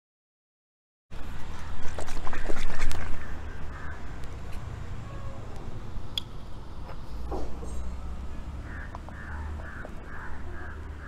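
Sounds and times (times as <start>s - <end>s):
bird making rough calls: 8.6s - 11.0s.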